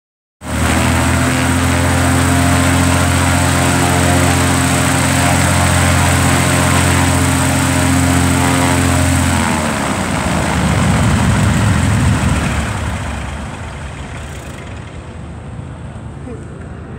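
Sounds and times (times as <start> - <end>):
rushing air noise: 0.4 - 16.0
aircraft piston engines running: 0.4 - 16.9.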